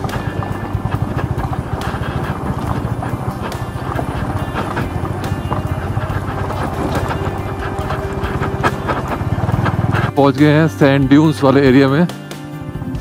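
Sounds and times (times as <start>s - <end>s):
motorcycle engine at low revs: 0.0s - 13.0s.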